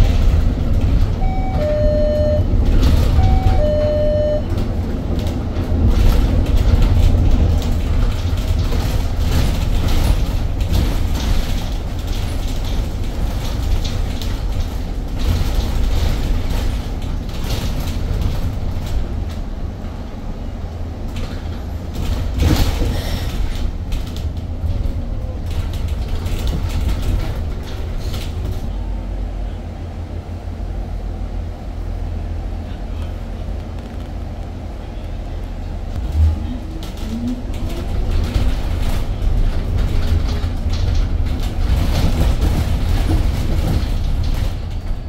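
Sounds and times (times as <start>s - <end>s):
bus road rumble: 0.0s - 45.0s
body rattles and knocks: 2.5s - 20.0s, 21.0s - 28.7s, 36.0s - 45.0s.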